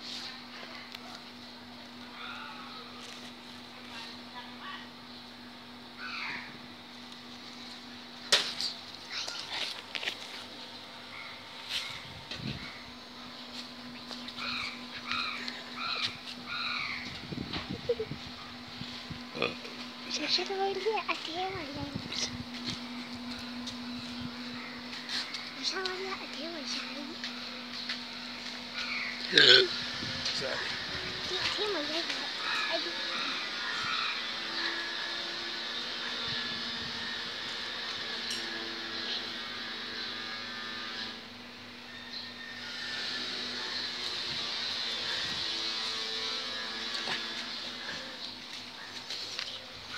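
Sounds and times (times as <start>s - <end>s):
bird calling: 6.0s - 6.6s, 13.8s - 17.2s, 28.7s - 35.0s.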